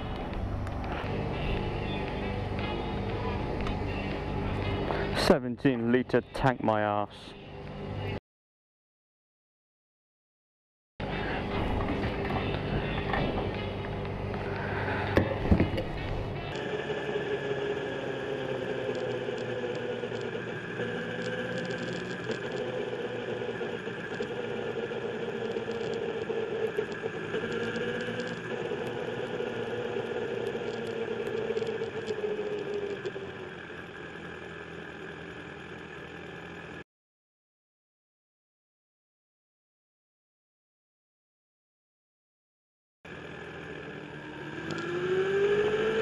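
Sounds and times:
motorcycle engine running: 0.0 - 6.6, 11.0 - 36.8, 43.1 - 46.0
sharp clicks: 18.6 - 33.2, 44.6 - 45.0.

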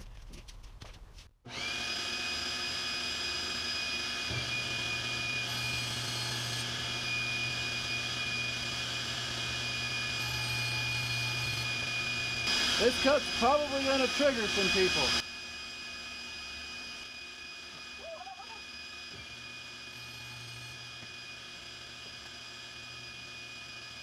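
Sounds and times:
table saw whining: 1.5 - 24.0.

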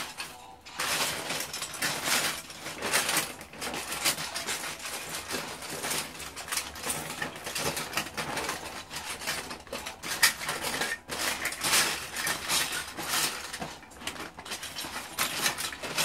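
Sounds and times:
plastic bricks clattering: 0.0 - 16.0.

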